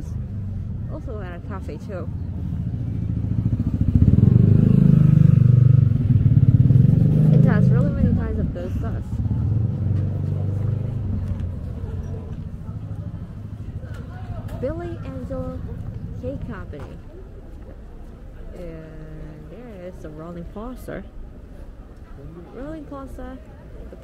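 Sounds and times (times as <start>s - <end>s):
vehicle engine passing by: 0.0s - 16.9s.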